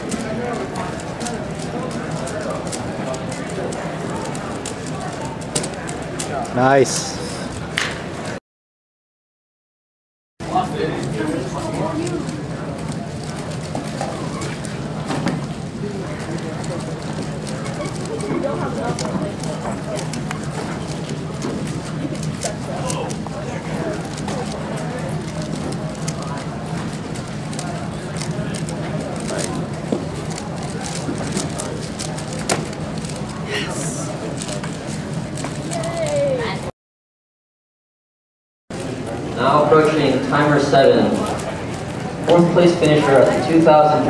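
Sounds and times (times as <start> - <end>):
crowd chattering: 0.0 - 8.4, 10.4 - 36.7, 38.7 - 44.0.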